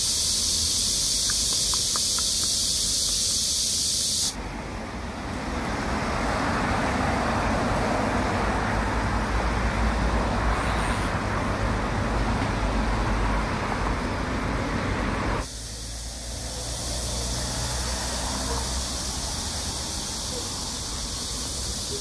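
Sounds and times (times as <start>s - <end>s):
road traffic noise: 0.0s - 22.0s.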